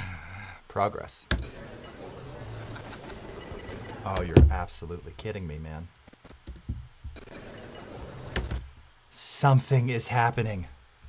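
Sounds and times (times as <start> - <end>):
faint steady hiss: 0.0 - 11.0
computer keys clicking: 6.3 - 6.7.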